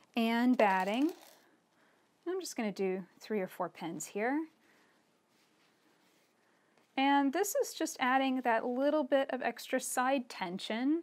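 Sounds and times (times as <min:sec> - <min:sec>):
faint rustle of fabric: 0:00.0 - 0:09.2.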